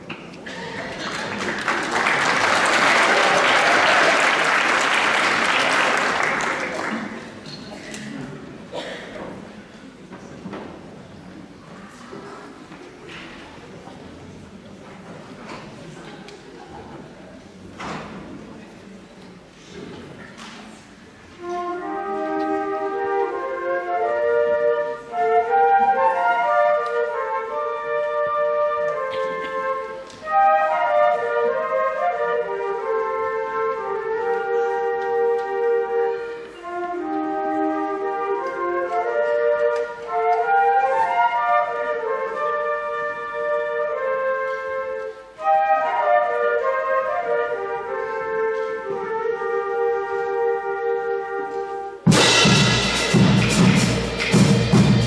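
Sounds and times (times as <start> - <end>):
flutes and brass band playing: 21.2 - 55.0
drums and percussion: 52.0 - 55.0.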